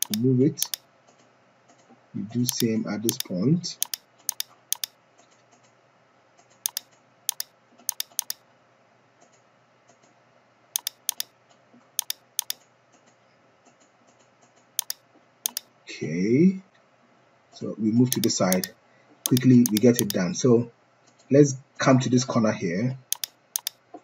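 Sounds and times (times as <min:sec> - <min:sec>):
computer mouse button clicking: 0:00.0 - 0:00.8, 0:02.5 - 0:04.9, 0:06.7 - 0:08.4, 0:10.8 - 0:11.3, 0:12.0 - 0:12.6, 0:14.8 - 0:15.6, 0:18.1 - 0:18.7, 0:19.3 - 0:20.2, 0:23.1 - 0:23.8
faint room hum: 0:00.0 - 0:24.0.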